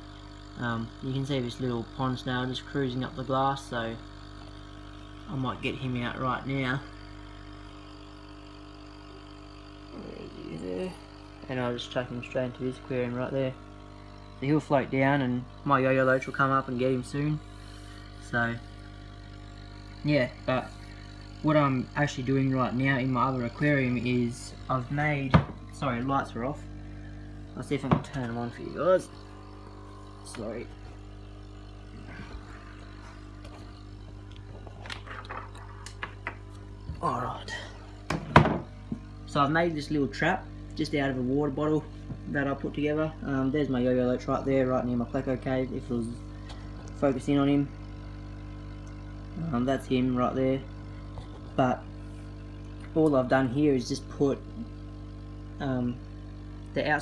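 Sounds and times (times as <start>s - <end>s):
aquarium equipment hum: 0.0s - 57.0s.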